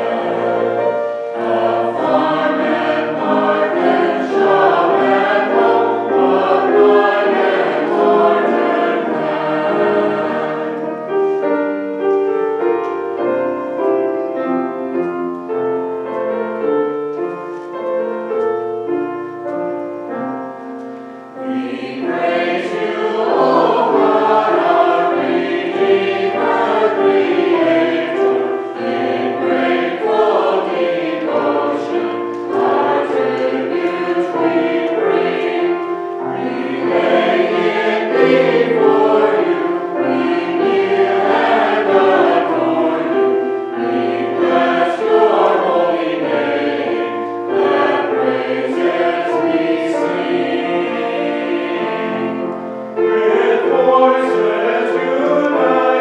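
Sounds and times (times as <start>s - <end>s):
mixed choir singing: 0.0s - 18.5s, 20.0s - 56.0s.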